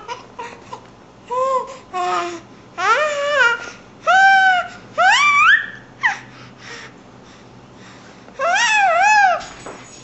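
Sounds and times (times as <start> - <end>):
infant squealing: 8.4 - 9.5.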